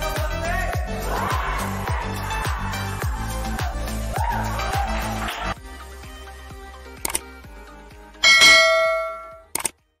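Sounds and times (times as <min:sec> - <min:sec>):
bright bell chime: 0:08.2 - 0:09.4.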